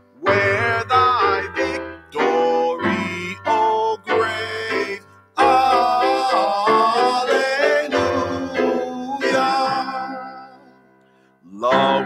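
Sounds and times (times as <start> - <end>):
instrumental accompaniment: 0.0 - 11.2
man singing a hymn: 0.2 - 10.9, 11.5 - 12.0.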